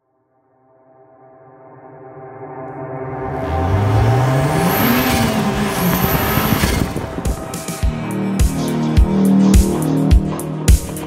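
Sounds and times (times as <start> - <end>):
music drone: 1.0 - 11.0
car engine revving: 3.0 - 11.0.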